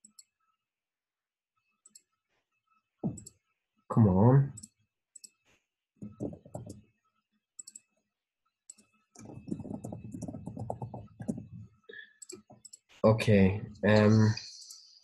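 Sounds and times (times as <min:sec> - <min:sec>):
computer mouse clicks: 0:00.0 - 0:00.3, 0:06.1 - 0:06.8, 0:07.6 - 0:07.9, 0:08.7 - 0:12.9
keyboard typing: 0:06.0 - 0:06.8, 0:08.7 - 0:12.9.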